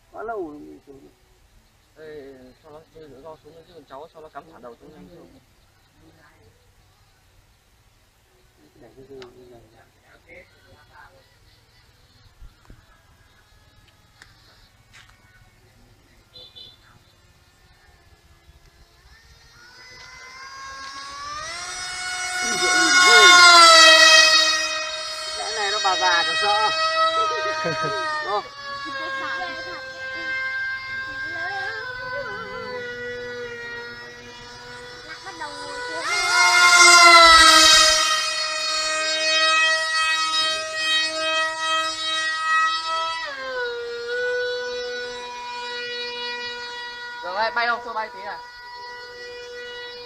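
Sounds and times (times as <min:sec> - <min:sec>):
model plane motor whining: 0:18.2 - 0:50.0.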